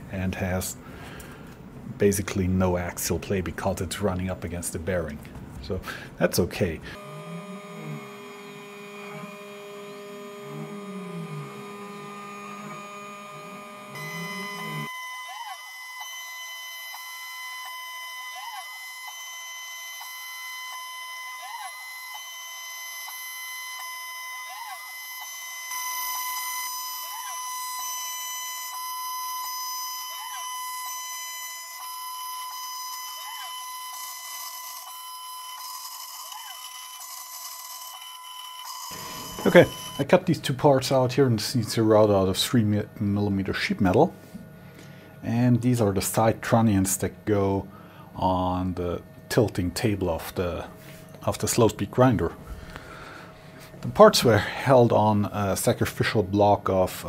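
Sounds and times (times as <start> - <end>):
milling machine spindle whine: 6.9 - 44.1
end mill cutting metal: 7.0 - 17.6, 24.9 - 42.4.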